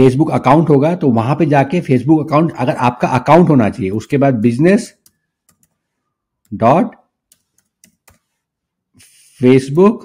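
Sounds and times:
computer keyboard keys tapping: 5.0s - 5.8s, 7.3s - 8.3s.

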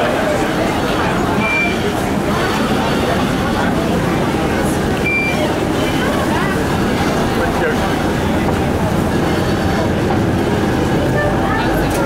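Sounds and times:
boat engines low rumble: 0.0s - 12.0s
passengers chattering: 0.0s - 12.0s.

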